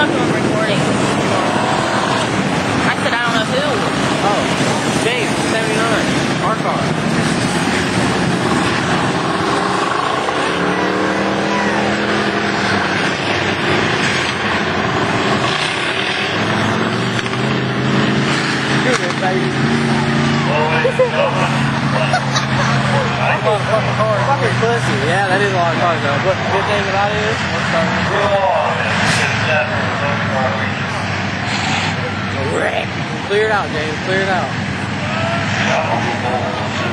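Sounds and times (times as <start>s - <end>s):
people talking: 0.0s - 13.9s, 18.6s - 36.9s
race car engines passing: 0.0s - 36.9s.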